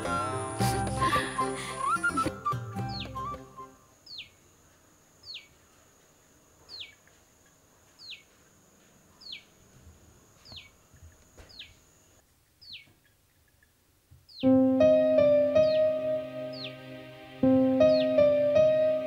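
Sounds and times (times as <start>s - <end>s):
bird whistling call: 0.2s - 4.3s.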